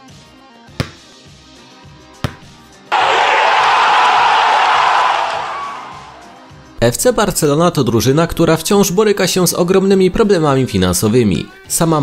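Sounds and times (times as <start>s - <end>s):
loud rush of noise: 2.9s - 6.2s.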